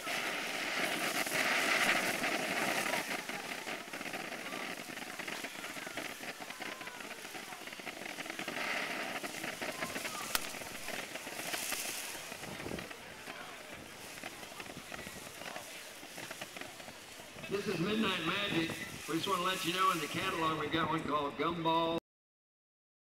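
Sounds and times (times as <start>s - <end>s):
firework sparks hissing and crackling: 0.0s - 21.3s
sharp firework pop: 9.2s - 10.9s.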